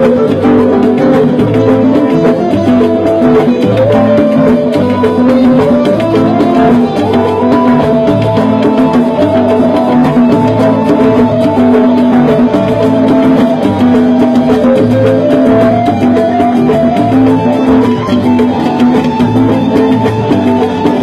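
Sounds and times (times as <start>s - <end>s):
congas and hand percussion: 0.0s - 21.0s
live band playing: 0.0s - 21.0s.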